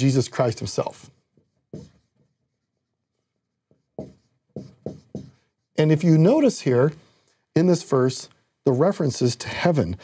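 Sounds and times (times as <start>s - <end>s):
marker scratching on whiteboard: 0.0s - 6.0s.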